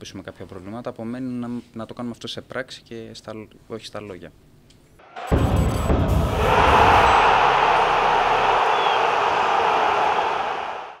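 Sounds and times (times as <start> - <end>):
deep bass hit: 5.2 - 8.6.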